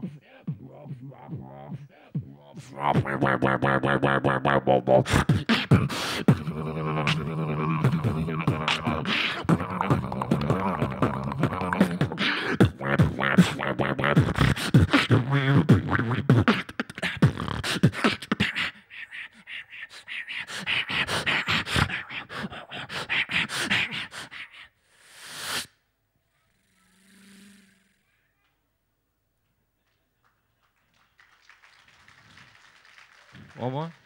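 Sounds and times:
beatboxing into microphone: 0.0s - 25.7s
rising breath-like rush: 22.4s - 25.8s.

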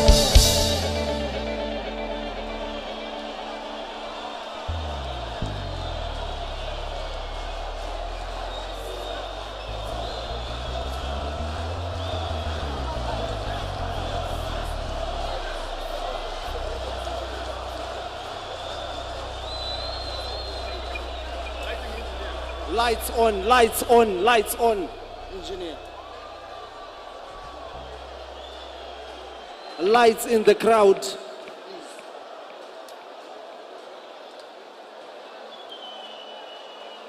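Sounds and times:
low bass notes: 0.0s - 29.4s
crowd voices: 0.0s - 37.0s.

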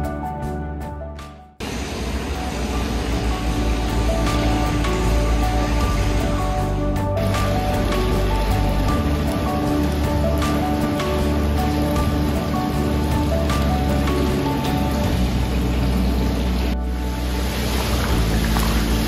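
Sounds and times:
music with slow held notes: 0.0s - 19.0s
water splashing into a bath: 17.3s - 19.0s.

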